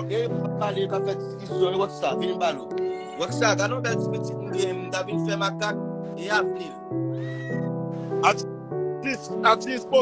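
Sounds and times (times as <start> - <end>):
background music of held chords: 0.0 - 10.0
short high-pitched cries: 7.2 - 7.7.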